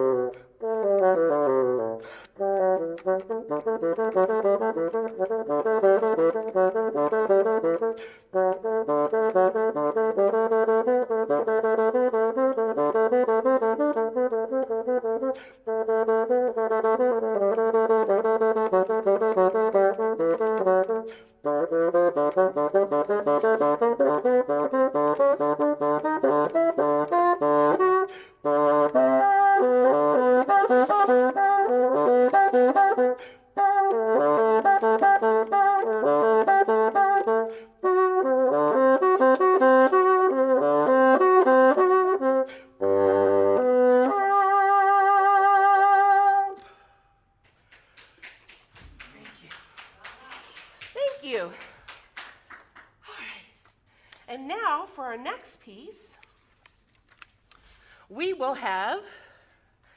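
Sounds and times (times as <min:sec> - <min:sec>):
bassoon playing fast runs: 0:00.0 - 0:46.6.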